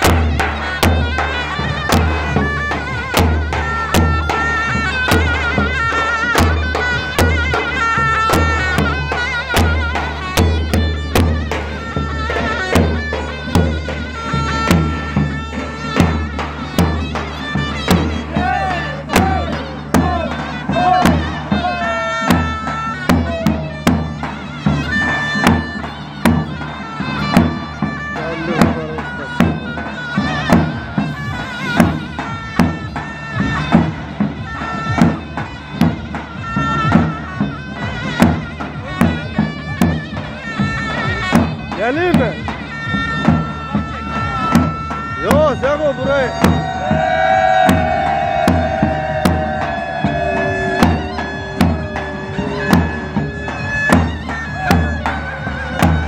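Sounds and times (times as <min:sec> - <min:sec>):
drum strokes: 0:00.0 - 0:56.0
reedy double-reed melody: 0:00.0 - 0:56.0.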